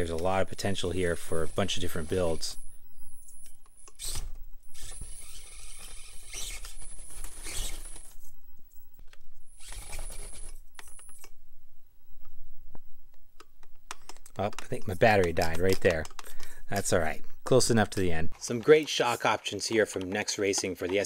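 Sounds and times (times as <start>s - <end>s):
small electric motor whine: 4.0s - 8.2s.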